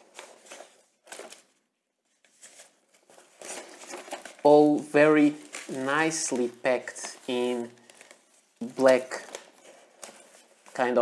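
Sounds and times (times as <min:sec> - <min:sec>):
tissue paper rustling: 0:00.0 - 0:11.0.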